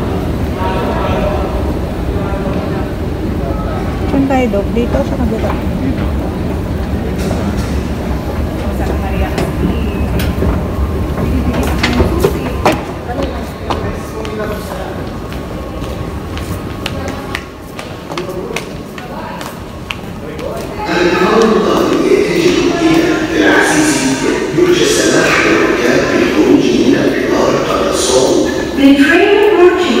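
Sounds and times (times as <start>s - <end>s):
heavy low train rumble: 0.0s - 30.0s
background voices: 0.1s - 30.0s.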